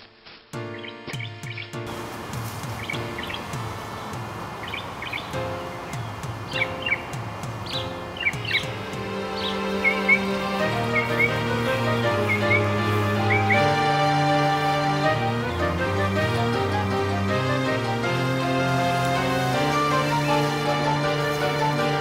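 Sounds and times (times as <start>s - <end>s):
background music: 0.0s - 22.0s
birds chirping: 0.0s - 22.0s.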